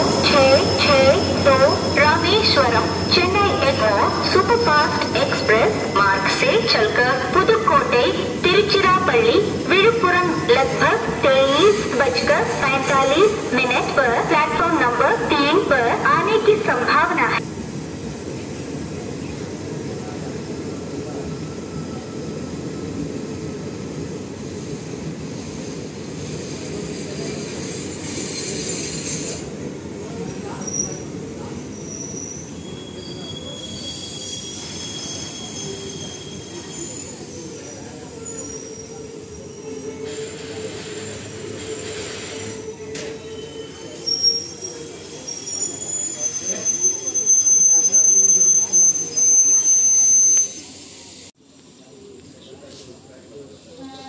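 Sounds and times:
high-pitched wheel squeals: 0:26.6 - 0:29.5, 0:31.7 - 0:50.8.

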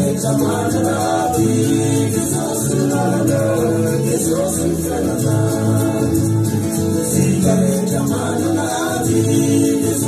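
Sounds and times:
musical backing: 0:00.0 - 0:10.0
voices singing in harmony: 0:00.0 - 0:10.0.

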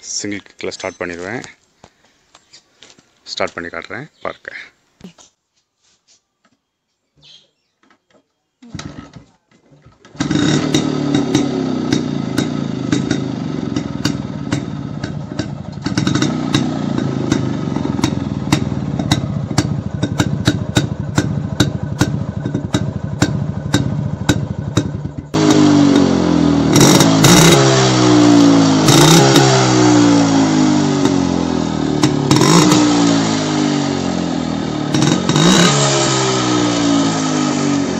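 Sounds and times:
motorcycle kick start: 0:08.7 - 0:28.1, 0:31.9 - 0:33.5
two-stroke engine idling: 0:10.1 - 0:35.7
engine revving: 0:10.1 - 0:37.9.

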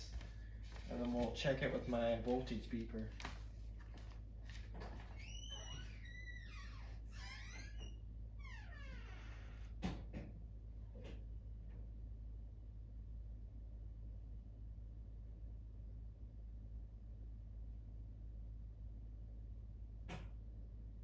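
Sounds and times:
steady low hum: 0:00.0 - 0:06.3, 0:09.5 - 0:21.0.

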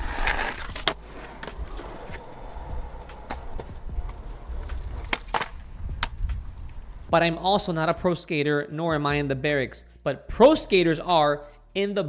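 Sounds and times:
skateboard clacks: 0:00.0 - 0:06.4
skateboard wheels rumbling: 0:00.0 - 0:07.1.

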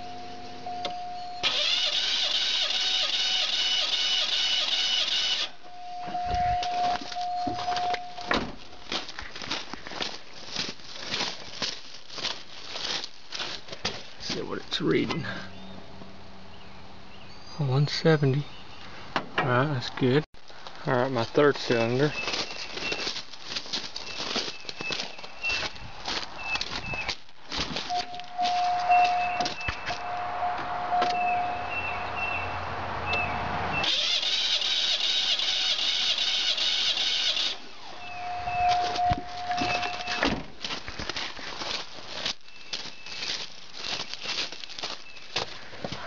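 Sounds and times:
engine cranked by starter: 0:01.4 - 0:05.5, 0:33.8 - 0:37.7
footsteps: 0:06.0 - 0:16.1, 0:20.4 - 0:30.7, 0:38.5 - 0:46.0.

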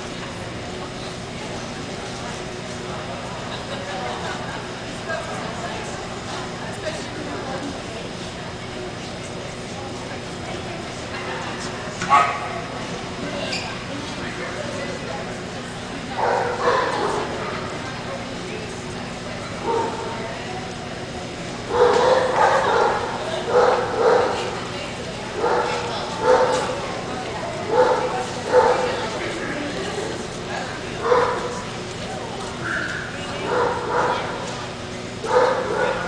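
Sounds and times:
dog barking: 0:12.1 - 0:12.5, 0:16.2 - 0:17.3, 0:21.7 - 0:24.5, 0:25.4 - 0:26.6, 0:27.7 - 0:28.9, 0:31.0 - 0:31.5, 0:32.7 - 0:34.4, 0:35.2 - 0:36.0.

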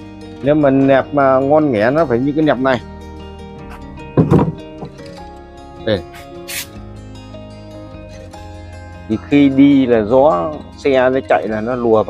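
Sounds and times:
background music held tones: 0:00.0 - 0:12.0
knock on wooden box: 0:04.1 - 0:05.0.

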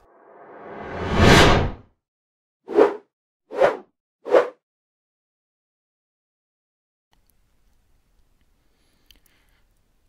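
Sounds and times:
whoosh: 0:00.0 - 0:01.8.

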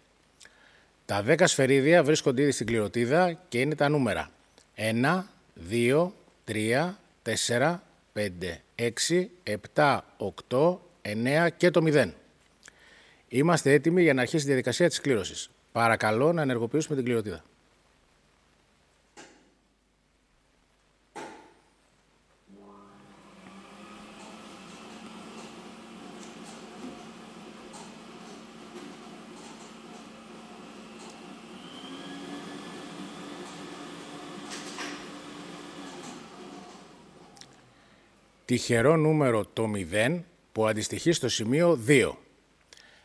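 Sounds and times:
motor hum: 0:22.5 - 0:37.4.

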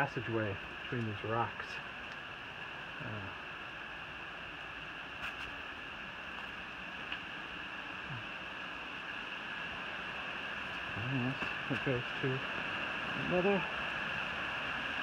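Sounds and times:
mountain stream rushing: 0:00.0 - 0:15.0.

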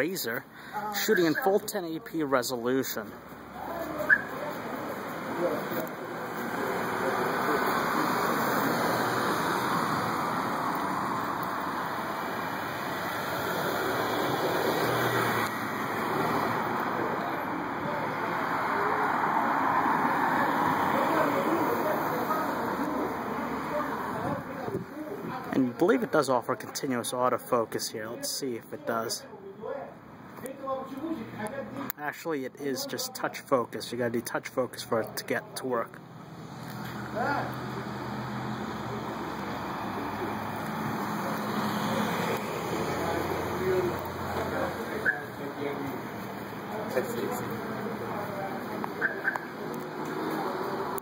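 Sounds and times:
traffic noise: 0:00.0 - 0:51.0.

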